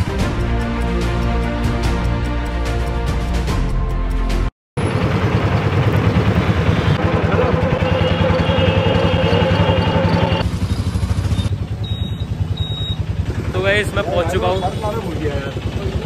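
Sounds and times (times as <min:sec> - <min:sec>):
auto-rickshaw engine chugging: 0:04.8 - 0:16.0
street traffic: 0:04.8 - 0:16.0.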